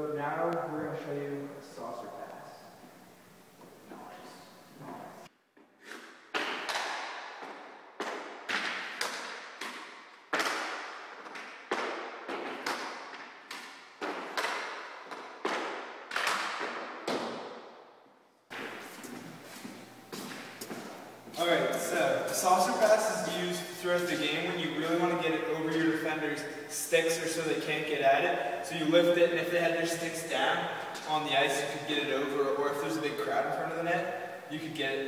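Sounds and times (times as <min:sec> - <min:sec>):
hockey puck clacking on sticks: 0:05.8 - 0:17.7.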